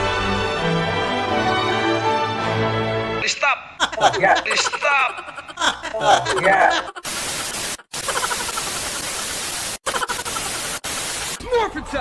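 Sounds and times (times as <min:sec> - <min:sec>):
television static hiss: 0:06.2 - 0:11.4.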